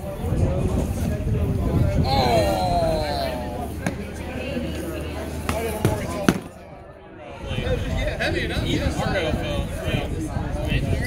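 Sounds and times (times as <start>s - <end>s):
foam swords striking shields: 5.5s - 6.6s.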